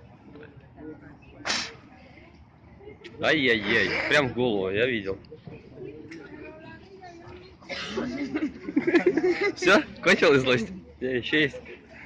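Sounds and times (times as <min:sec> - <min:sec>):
faint voices: 0:00.0 - 0:12.0
man spitting: 0:01.5 - 0:01.7.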